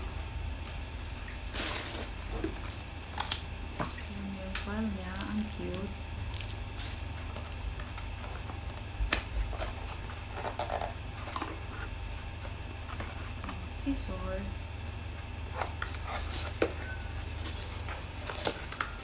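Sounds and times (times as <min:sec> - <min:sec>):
plastic bags rustling: 0:00.0 - 0:04.5, 0:15.6 - 0:19.0
steady low hum: 0:00.0 - 0:19.0.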